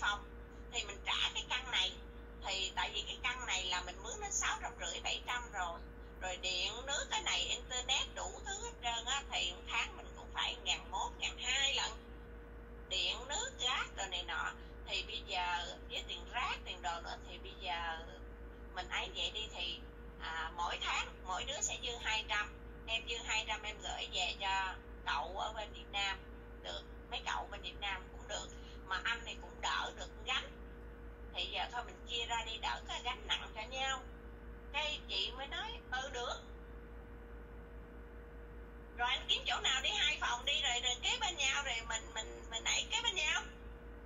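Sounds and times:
woman talking: 0:00.0 - 0:12.0, 0:12.9 - 0:18.2, 0:18.8 - 0:30.5, 0:31.4 - 0:34.1, 0:34.8 - 0:36.4, 0:39.0 - 0:43.5.

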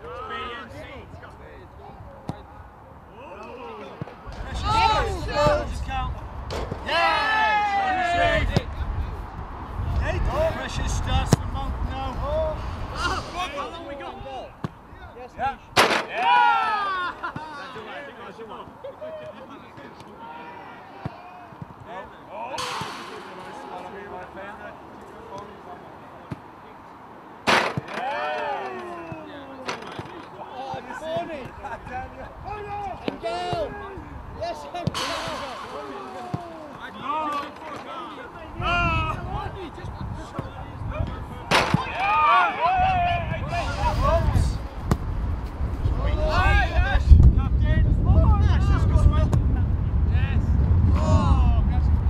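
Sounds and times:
players shouting and chatting: 0:00.0 - 0:52.0
wind rumble on microphone: 0:08.2 - 0:13.5, 0:38.5 - 0:41.5, 0:42.8 - 0:52.0
football being kicked: 0:44.8 - 0:45.1.

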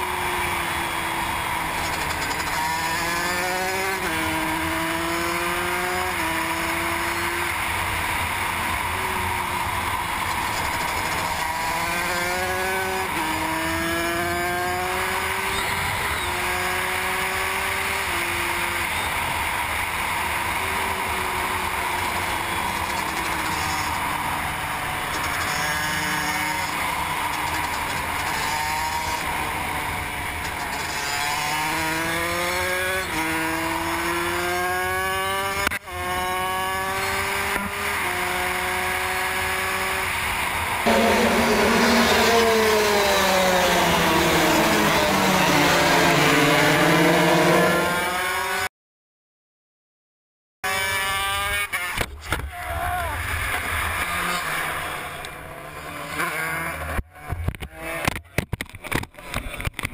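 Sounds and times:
racing motorcycles at full throttle: 0:00.0 - 0:48.7, 0:50.6 - 0:52.2, 0:53.1 - 0:59.9.

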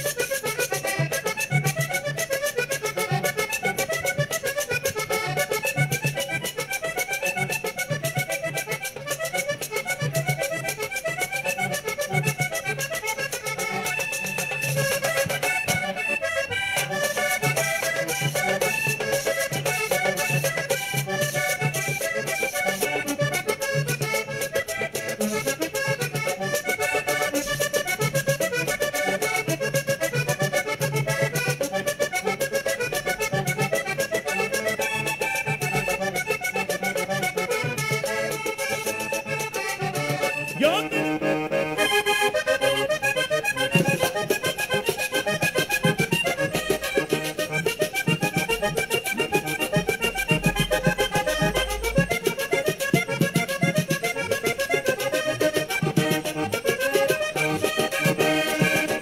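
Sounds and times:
scraper rhythm: 0:00.0 - 0:41.2, 0:41.9 - 0:59.0
button accordion playing: 0:00.0 - 0:59.0
drum rhythm: 0:25.5 - 0:41.0, 0:43.6 - 0:57.0.

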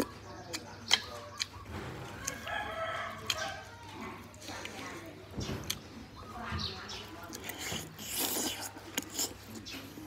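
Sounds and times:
rooster crowing: 0:02.2 - 0:03.9.

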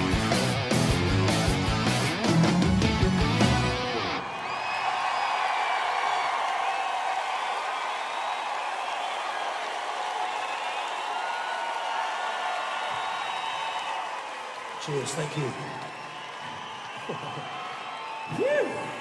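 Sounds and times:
concert crowd cheering and screaming: 0:00.0 - 0:19.0.

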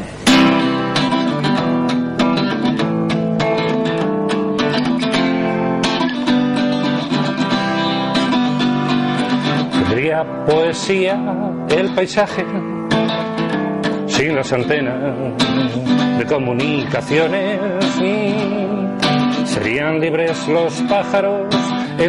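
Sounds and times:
acoustic guitar plucked and strummed: 0:00.0 - 0:22.0.

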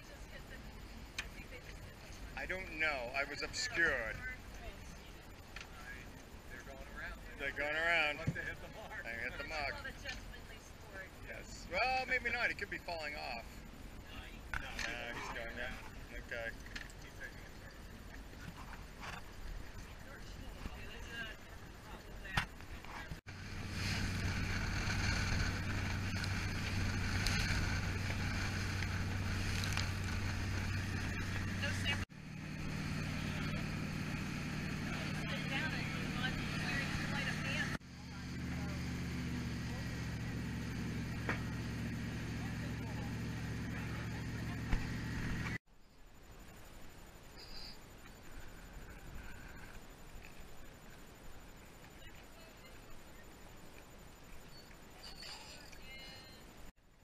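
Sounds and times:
wind and water noise: 0:00.0 - 0:32.0
faint voices: 0:14.0 - 0:45.6
motorboat engine running: 0:23.3 - 0:45.6.

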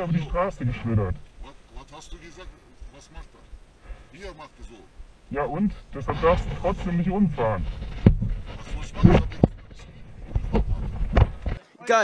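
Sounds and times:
men arguing: 0:00.0 - 0:07.6
steady low rumble: 0:00.0 - 0:11.6.

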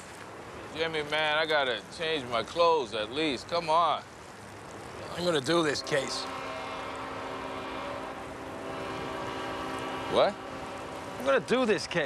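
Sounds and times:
distant train running: 0:00.0 - 0:12.0.

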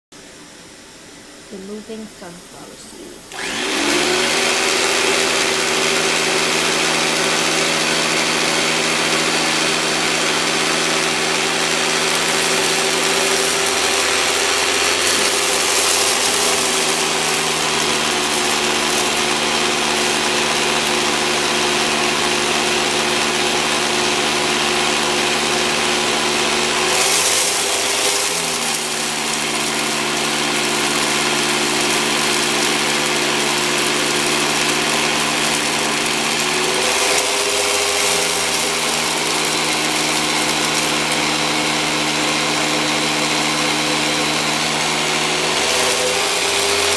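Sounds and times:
vacuum cleaner running: 0:00.1 - 0:46.9.

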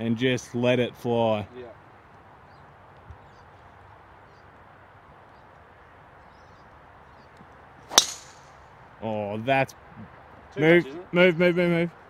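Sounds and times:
golf driver striking ball: 0:07.9 - 0:08.6.

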